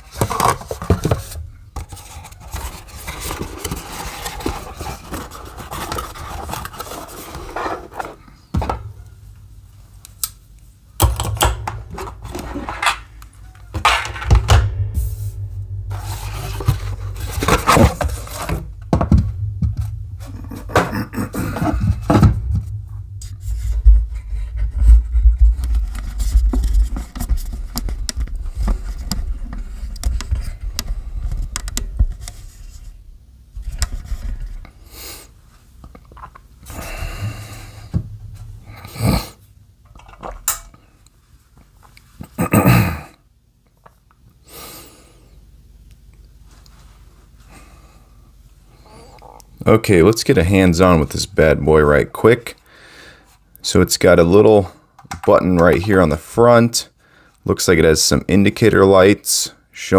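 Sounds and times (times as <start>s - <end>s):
low rumble of handling: 11.6s - 34.8s.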